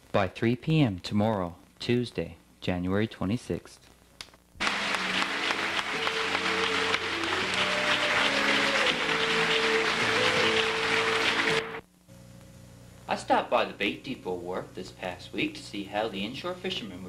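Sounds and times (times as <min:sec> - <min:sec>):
audience applause: 0:04.6 - 0:11.8
music with long held notes: 0:04.6 - 0:11.8.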